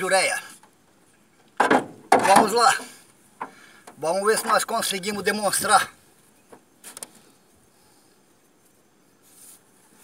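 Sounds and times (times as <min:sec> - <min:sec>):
soft net rustle: 0:08.5 - 0:10.0.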